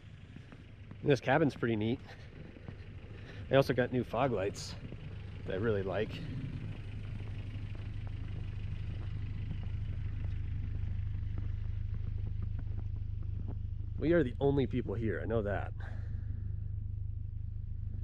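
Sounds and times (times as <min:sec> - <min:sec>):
car engine idling: 0:00.0 - 0:18.0.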